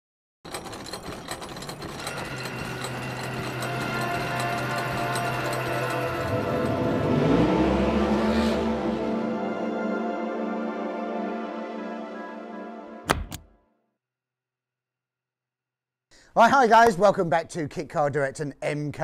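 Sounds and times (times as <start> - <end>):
fast mechanical ticking: 0.5 - 7.1
steady tones: 0.5 - 10.0
held chord: 2.3 - 13.0
rising sweep with low rumble: 6.6 - 9.8.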